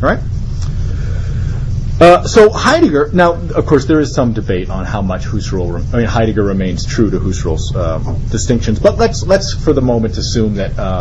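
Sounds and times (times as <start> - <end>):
man speaking: 0.0 - 0.4, 2.0 - 11.0
steady low rumble: 0.0 - 11.0.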